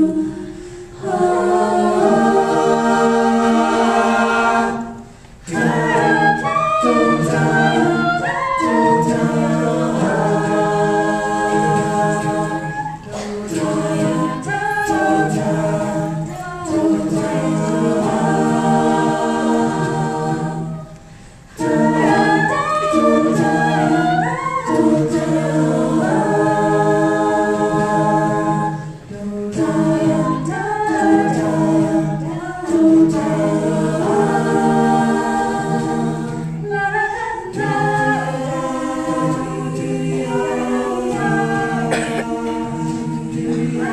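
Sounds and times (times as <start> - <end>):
a cappella vocal ensemble: 0.0 - 43.9.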